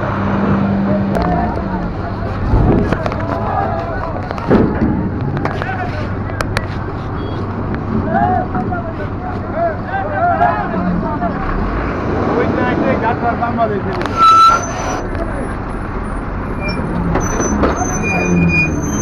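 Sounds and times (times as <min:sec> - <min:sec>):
people chattering: 0:00.0 - 0:19.0
vehicle engines running: 0:00.0 - 0:19.0.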